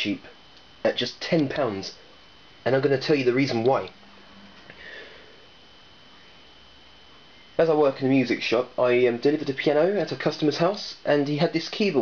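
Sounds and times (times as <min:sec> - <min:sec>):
steady low hiss: 0:00.0 - 0:12.0.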